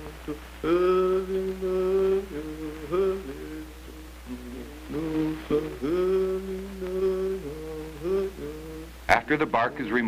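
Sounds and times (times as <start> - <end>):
low hum: 0.0 - 10.0
voice chanting long notes: 0.0 - 10.0.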